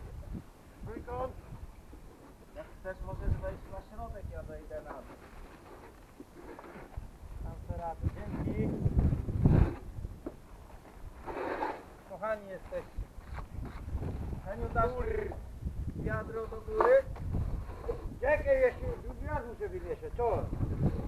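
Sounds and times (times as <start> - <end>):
wind rumbling on microphone: 0.0 - 5.5, 6.8 - 11.7, 12.7 - 21.0.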